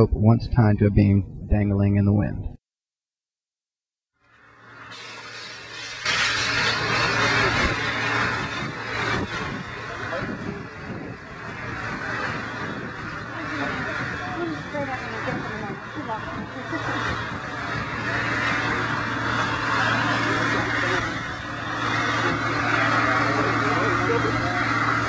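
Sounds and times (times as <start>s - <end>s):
loud rushing spray hiss: 4.5s - 25.0s
faint voices: 7.0s - 25.0s.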